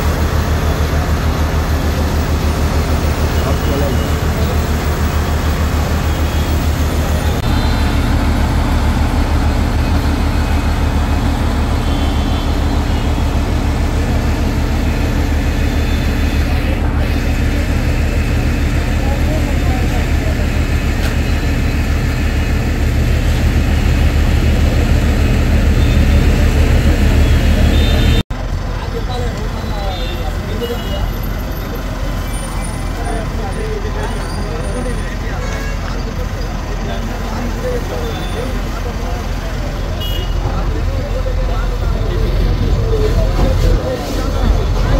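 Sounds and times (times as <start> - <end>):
heavy vehicle engine running: 0.0 - 44.9
indistinct voices: 0.0 - 44.9.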